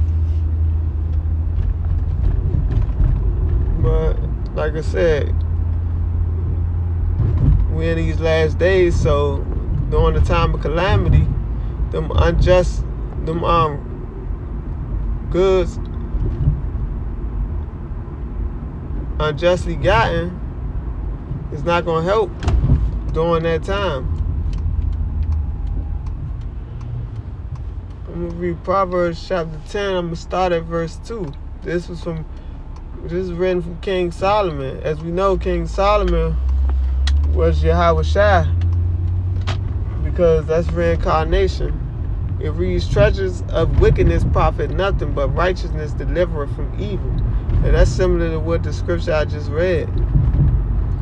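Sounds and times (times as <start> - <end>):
low rumble: 0.0 - 51.0.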